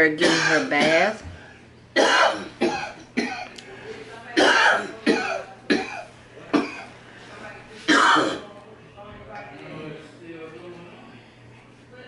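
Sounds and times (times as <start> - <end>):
man coughing: 0.2 - 1.1, 2.0 - 3.6, 4.4 - 6.9, 7.9 - 8.5.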